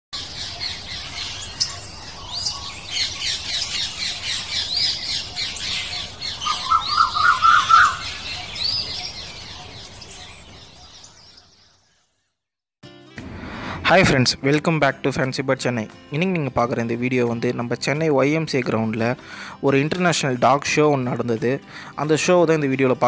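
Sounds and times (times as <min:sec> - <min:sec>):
small birds chattering and squawking: 0:00.2 - 0:12.3.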